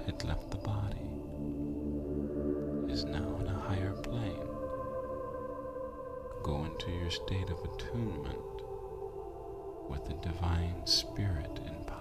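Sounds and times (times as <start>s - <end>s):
low voice: 0.0s - 1.2s, 2.8s - 4.6s, 6.3s - 8.6s, 9.9s - 12.0s
ambient meditation music: 0.0s - 12.0s.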